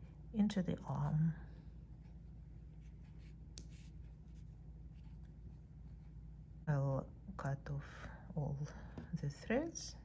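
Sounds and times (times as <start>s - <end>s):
rustling of needle and thread: 0.0s - 6.7s
low steady hum: 0.0s - 10.0s.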